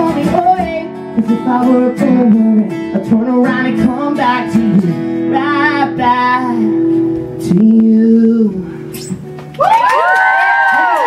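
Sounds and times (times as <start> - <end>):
acoustic song: 0.0 - 11.0
audience cheering and screaming: 9.6 - 11.0.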